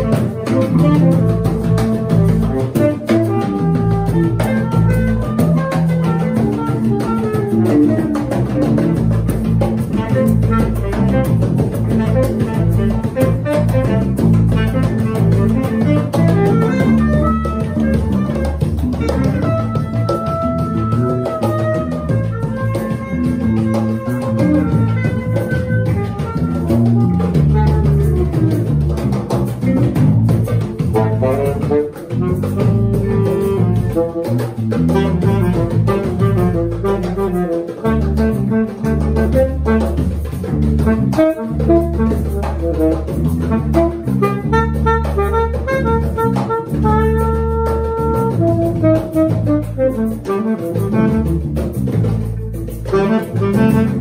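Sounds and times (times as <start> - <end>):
drums: 0.0 - 54.0
electric guitar: 0.0 - 54.0
saxophone solo: 0.0 - 54.0
walking bass: 0.0 - 54.0.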